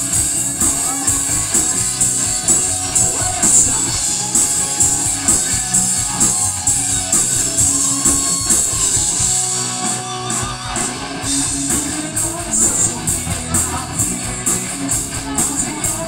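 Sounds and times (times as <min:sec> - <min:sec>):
bass guitar: 0:00.0 - 0:16.0
drum kit with cymbal hits: 0:00.0 - 0:16.0
electric guitars: 0:00.0 - 0:16.0.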